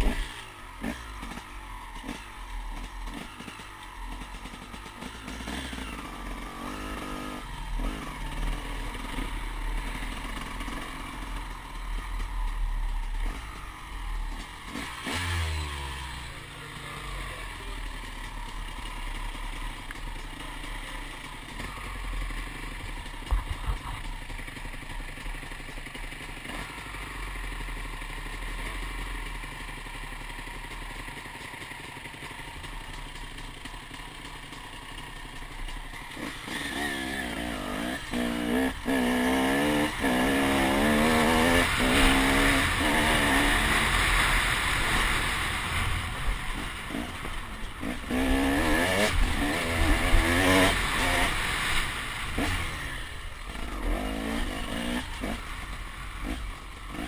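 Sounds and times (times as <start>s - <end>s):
motorcycle engine idling: 0.0s - 57.0s.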